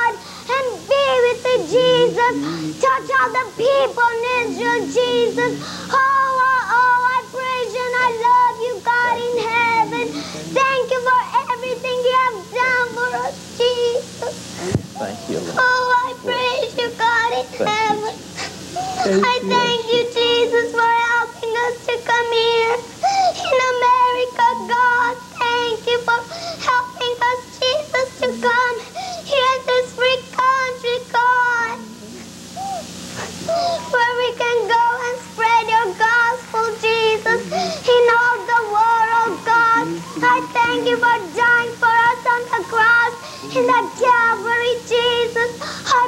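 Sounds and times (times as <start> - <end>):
girl praying in sing-song voice: 0.0 - 46.0.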